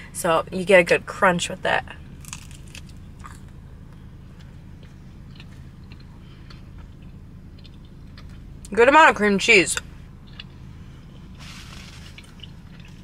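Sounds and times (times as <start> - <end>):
steady low hum: 0.0 - 13.0
chewing and bite clicks: 2.2 - 3.6, 4.4 - 8.5, 10.2 - 10.6, 11.4 - 13.0.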